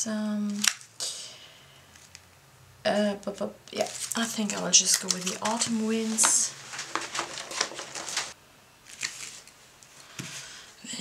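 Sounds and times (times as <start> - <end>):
plastic sheet clicking and crackling: 3.8 - 9.6.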